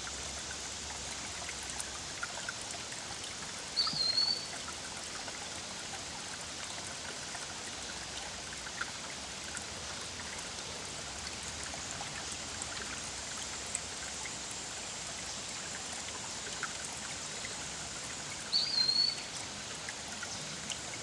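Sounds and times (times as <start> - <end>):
stream running over stones: 0.0 - 21.0
water trickles and drips: 0.0 - 21.0.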